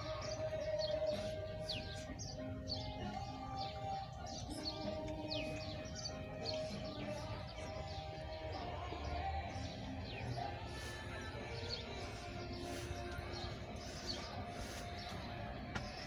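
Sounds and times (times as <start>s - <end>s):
birds chirping: 0.0s - 16.0s
soft music with held tones: 0.0s - 16.0s.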